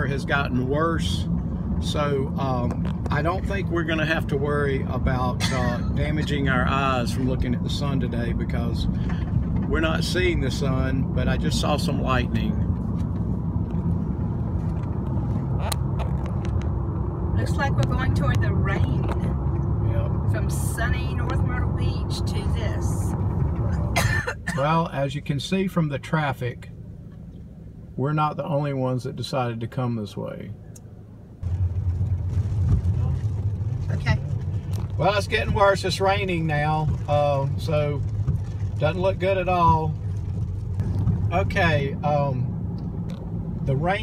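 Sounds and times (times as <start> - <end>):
car engine rumble: 0.0 - 44.0
tyre road noise: 0.0 - 44.0
rain hissing on windshield: 31.4 - 41.6.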